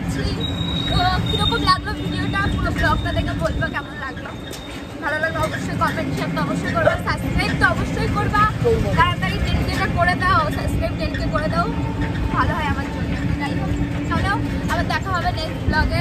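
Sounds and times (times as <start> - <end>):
rickshaw rumbling: 0.0 - 16.0
voices talking: 0.0 - 16.0.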